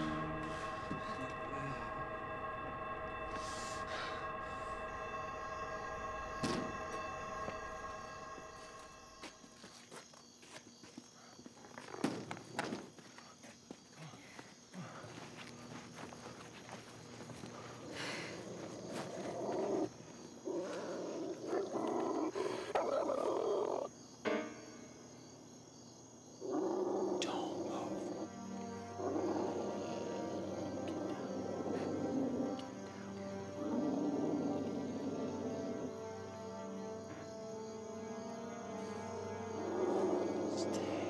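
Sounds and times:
tense film score: 0.0 - 41.0.

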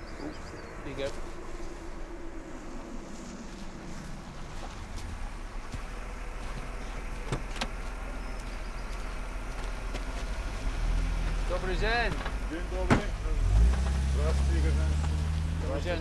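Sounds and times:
car driving on dirt road: 0.0 - 16.0
car door clicking open: 7.2 - 7.8.

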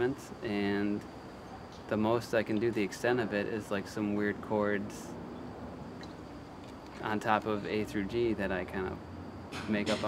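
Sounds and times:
low outdoor background hum: 0.0 - 10.0.

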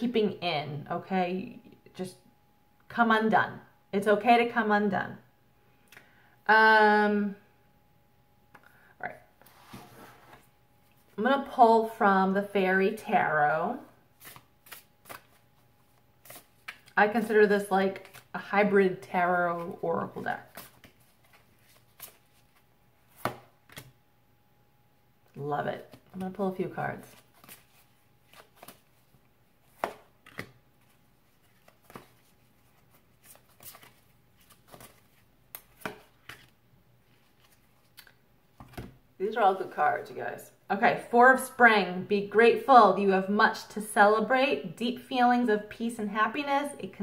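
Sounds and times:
cards being shuffled: 14.2 - 17.3, 17.9 - 18.4, 20.4 - 24.0, 27.0 - 38.9
cards shuffled snapping and tapping: 16.2 - 17.0, 23.1 - 23.9, 29.7 - 30.6, 31.5 - 32.3, 33.3 - 36.5.

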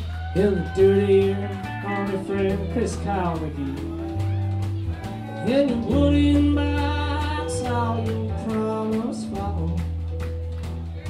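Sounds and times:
person singing: 0.0 - 10.1
acoustic guitar: 0.0 - 11.0
bass notes: 0.0 - 11.0.

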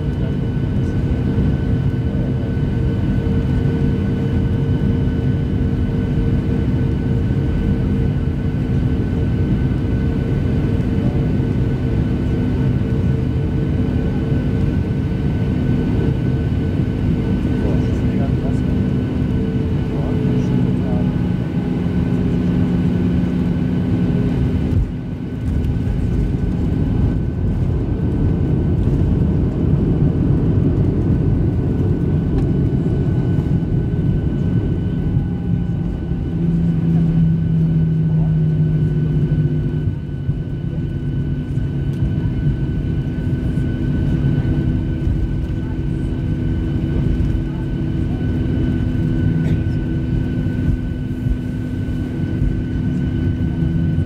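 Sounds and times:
aircraft engines and airflow rushing: 0.0 - 54.0.

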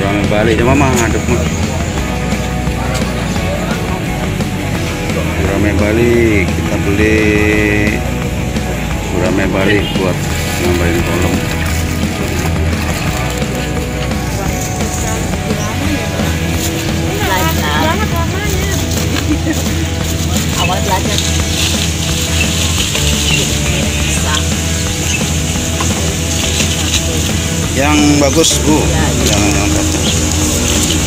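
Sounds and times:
background music: 0.0 - 31.0
market chatter: 0.0 - 31.0
water pouring and splashing: 9.1 - 31.0.

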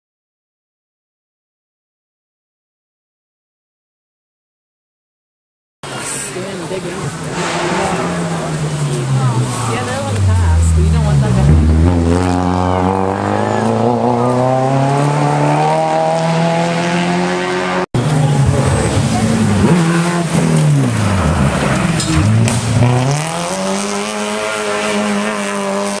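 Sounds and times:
rally car engine at high revs: 7.0 - 26.0.

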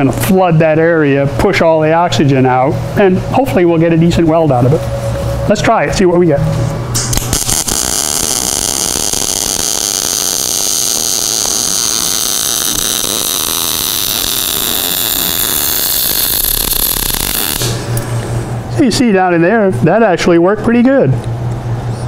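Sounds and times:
welding arc crackling hiss: 6.9 - 18.0.

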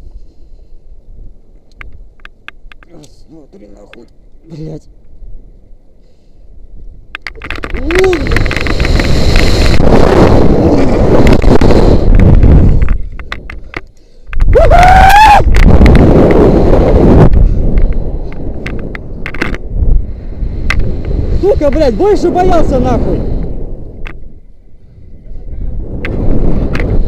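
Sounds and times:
wind rushing over microphone: 5.0 - 27.0.

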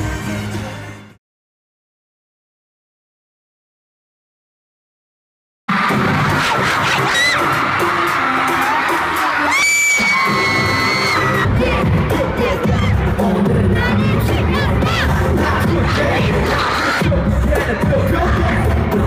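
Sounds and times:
amplified pop music: 0.0 - 1.2, 5.7 - 19.0
crowd screaming and cheering: 5.7 - 19.0
long high scream: 9.5 - 11.4.

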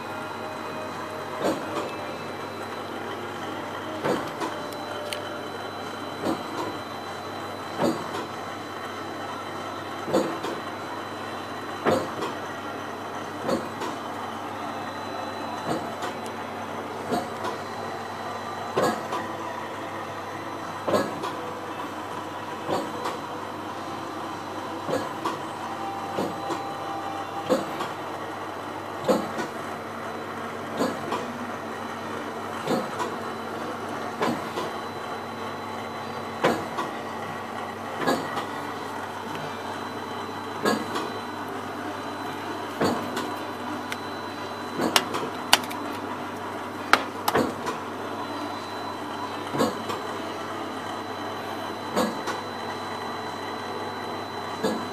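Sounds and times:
printing press mechanical hum: 0.0 - 54.9
printing press sharp clack: 46.9 - 47.8.

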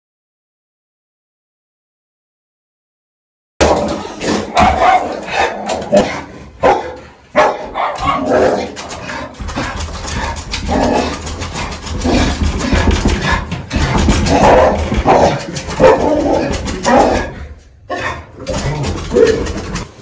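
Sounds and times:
dog barking and growling: 3.6 - 20.0
sharp knocks: 7.6 - 17.4
dog scrabbling on leash: 7.8 - 17.4.

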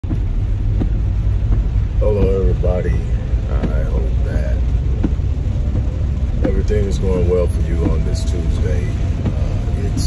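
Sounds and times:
low rumble inside car cabin: 0.0 - 10.0
man talking: 2.0 - 4.7, 6.4 - 10.0.

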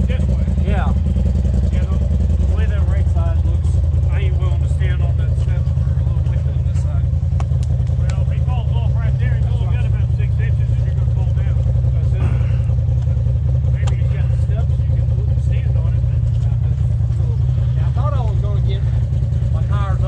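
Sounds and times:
vehicle engine running at low revs: 0.0 - 20.0
voices calling out: 0.0 - 20.0.

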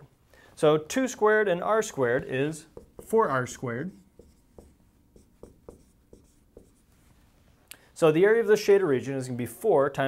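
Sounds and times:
marker writing on whiteboard: 1.8 - 7.0.

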